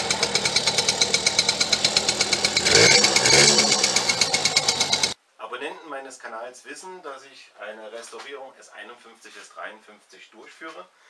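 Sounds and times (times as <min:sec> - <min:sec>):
engine revving: 0:00.0 - 0:05.2
small motorbike engine idling: 0:00.0 - 0:05.2.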